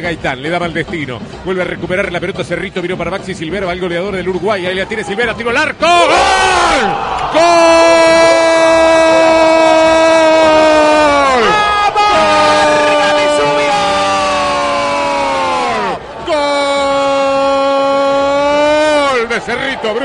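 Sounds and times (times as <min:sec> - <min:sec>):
commentator's drawn-out goal cry: 0:04.9 - 0:19.9.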